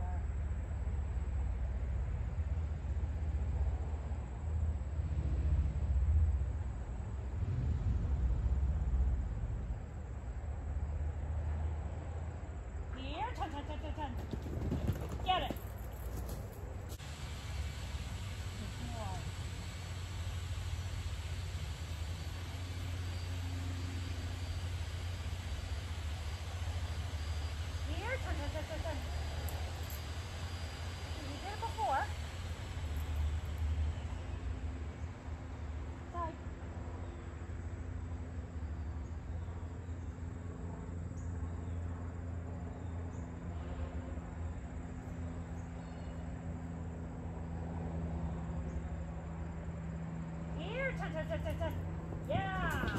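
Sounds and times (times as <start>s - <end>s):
steady low hum: 0.0s - 52.9s.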